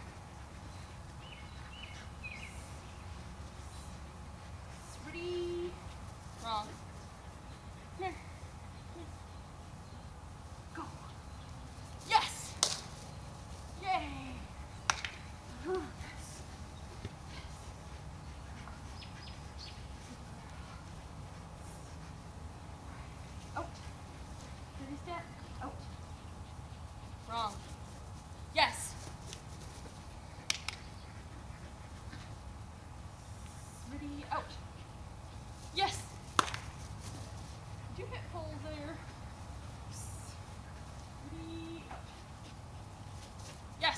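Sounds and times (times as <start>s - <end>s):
low outdoor hum: 0.0s - 43.9s.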